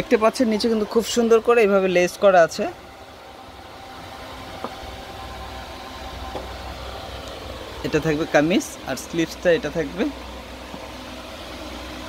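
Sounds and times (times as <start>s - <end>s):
low rumbling hum: 0.0s - 12.0s.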